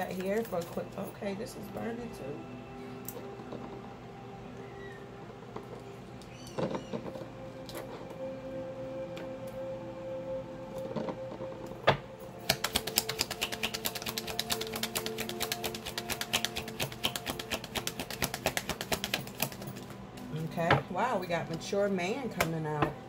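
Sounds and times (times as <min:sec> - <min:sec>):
background music with sustained notes: 0:00.0 - 0:23.0
cards being shuffled by hand: 0:12.4 - 0:20.4.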